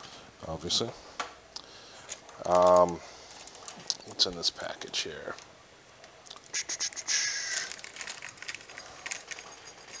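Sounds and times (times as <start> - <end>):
packaging crinkling and rustling: 2.0 - 6.2, 7.4 - 9.6.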